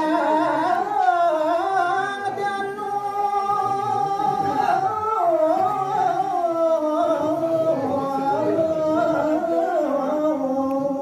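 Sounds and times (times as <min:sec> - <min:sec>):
man singing traditional verse: 0:00.0 - 0:11.0.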